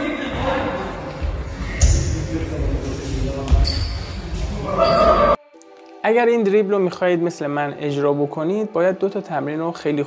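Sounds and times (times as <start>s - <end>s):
echoing voices: 0.0s - 10.0s.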